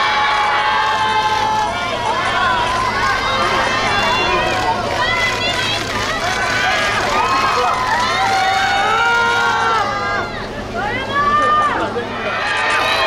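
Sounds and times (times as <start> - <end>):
crowd shouting: 0.0 - 13.0
low steady hum: 0.0 - 13.0.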